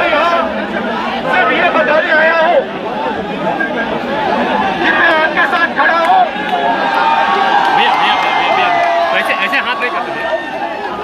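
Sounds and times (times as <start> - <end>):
crowd talking: 0.0 - 11.0.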